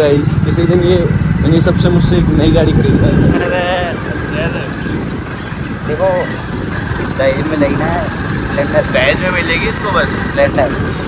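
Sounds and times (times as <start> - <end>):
motorcycle engine hum: 0.0 - 11.0
road noise: 0.0 - 11.0
wind noise: 0.0 - 11.0.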